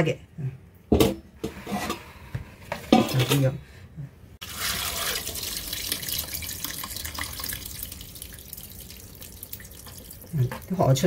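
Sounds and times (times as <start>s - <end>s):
water draining into steel bowl: 4.4s - 11.0s
water pouring into metal colander: 4.4s - 11.0s.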